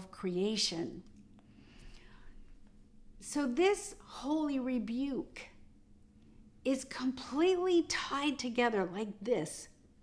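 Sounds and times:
woman speaking: 0.0 - 1.1, 3.2 - 5.6, 6.6 - 9.8
faint soft breath: 1.4 - 2.8.

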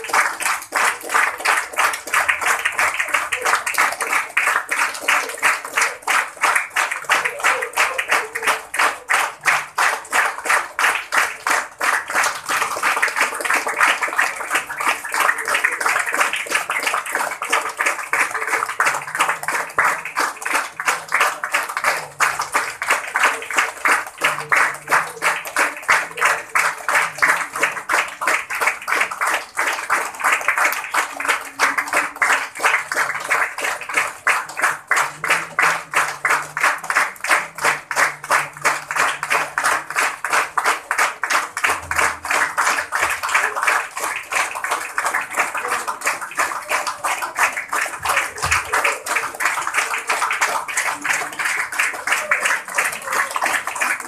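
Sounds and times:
crowd clapping in unison: 0.0 - 54.0.

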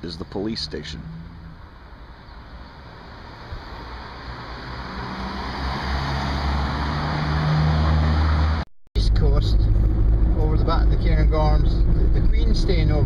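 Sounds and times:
vehicle engine and tyre noise: 0.0 - 13.0.

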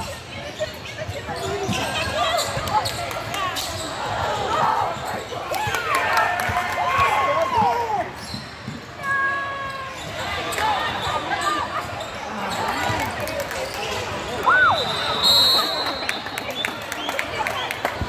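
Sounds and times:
shoe squeaks: 0.0 - 4.1, 8.2 - 9.0.

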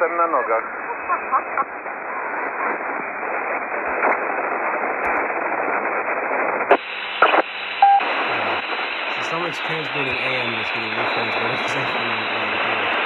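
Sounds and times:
radio static hiss: 0.0 - 13.0
static crackles: 0.0 - 13.0
short beep: 7.8 - 8.0.

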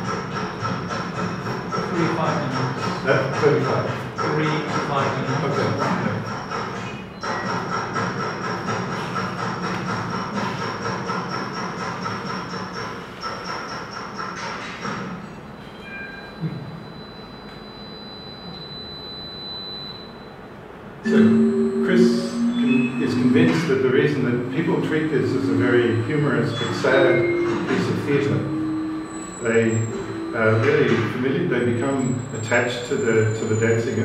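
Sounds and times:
dense electronic sound: 21.0 - 34.0.

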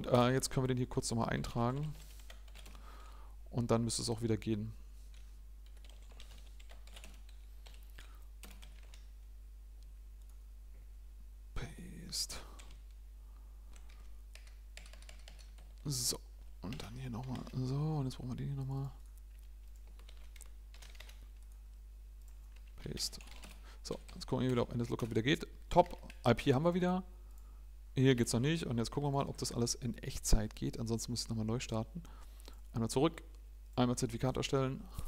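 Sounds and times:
low electrical hum: 0.0 - 35.0
typing on computer keyboard: 2.0 - 2.8, 5.6 - 9.1, 13.7 - 15.8, 19.3 - 21.6, 22.2 - 25.2.

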